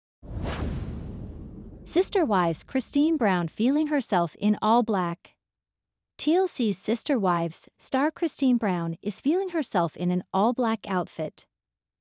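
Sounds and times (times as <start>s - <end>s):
whoosh transition: 0.2s - 3.2s
woman narrating: 1.9s - 5.3s, 6.2s - 11.4s.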